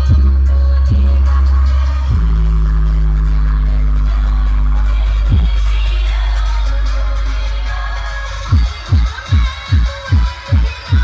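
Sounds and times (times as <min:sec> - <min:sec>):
loud bass-heavy dance music: 0:00.0 - 0:11.0.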